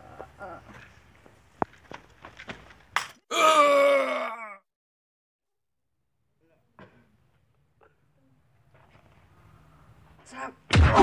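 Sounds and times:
man groaning in pain: 3.3s - 4.7s.

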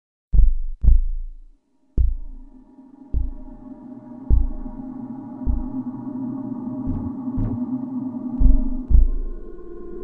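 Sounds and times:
deep booming bass thumps: 0.3s - 2.4s, 3.2s - 3.6s, 4.3s - 4.8s, 5.5s - 5.8s, 8.4s - 9.3s.

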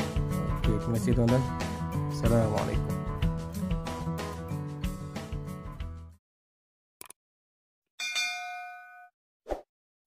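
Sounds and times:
notification bell chime: 8.0s - 9.1s.

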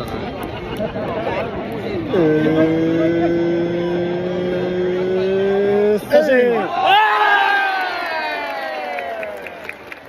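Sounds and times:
crowd cheering and shouting: 5.6s - 9.9s.

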